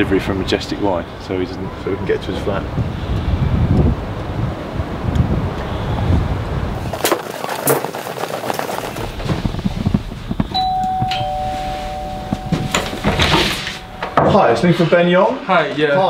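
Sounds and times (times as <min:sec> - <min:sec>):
wind rumbling on microphone: 0:00.0 - 0:14.6
two-tone doorbell chime: 0:10.5 - 0:14.6.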